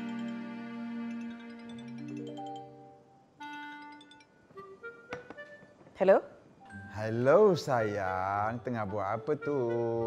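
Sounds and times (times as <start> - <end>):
phone ringtone chiming: 1.2 - 4.8.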